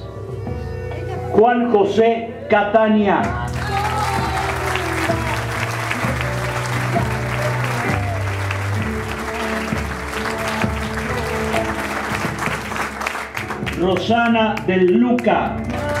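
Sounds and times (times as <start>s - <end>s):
music over sound system: 0.0s - 16.0s
audience applauding: 3.4s - 16.0s.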